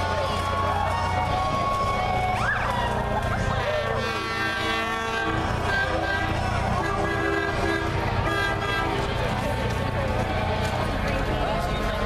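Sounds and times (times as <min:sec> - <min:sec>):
crowd shouting: 0:00.0 - 0:12.0
engine rumble: 0:00.0 - 0:12.0
siren: 0:00.6 - 0:03.9
fire engine air horn: 0:00.8 - 0:09.7.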